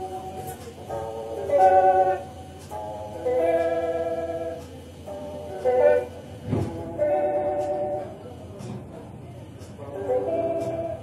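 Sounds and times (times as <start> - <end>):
electric guitar sustained chords: 0.0 - 8.2.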